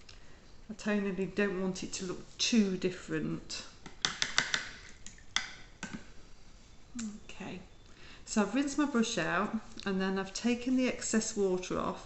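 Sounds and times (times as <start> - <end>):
paintbrush knocking on water pot: 3.9 - 4.8.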